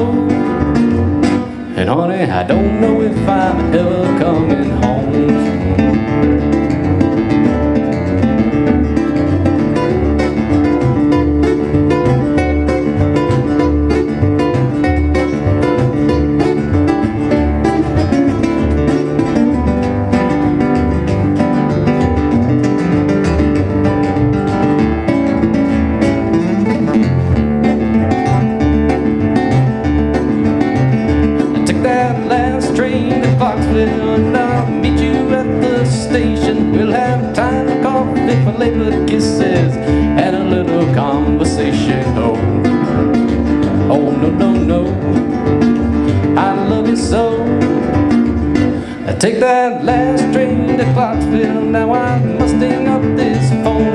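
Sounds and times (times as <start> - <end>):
fingerpicked guitars: 0.0 - 53.9
plucked washtub bass: 0.0 - 53.9.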